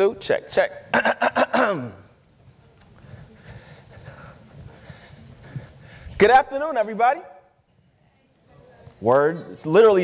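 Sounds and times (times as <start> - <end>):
man speaking into a microphone: 6.2 - 7.4, 9.0 - 10.0.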